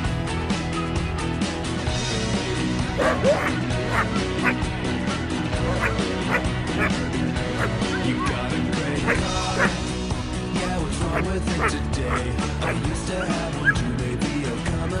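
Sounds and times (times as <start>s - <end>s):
background music: 0.0s - 15.0s
small dog barking: 3.0s - 4.6s, 5.6s - 7.0s, 9.1s - 9.8s.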